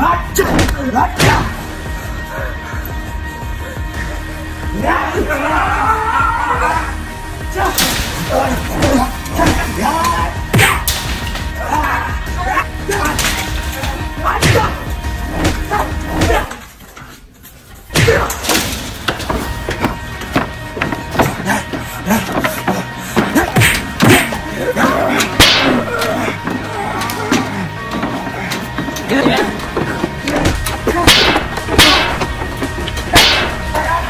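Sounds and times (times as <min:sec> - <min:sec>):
background music: 0:00.0 - 0:34.0
fight hits: 0:25.4 - 0:26.2, 0:30.4 - 0:34.0.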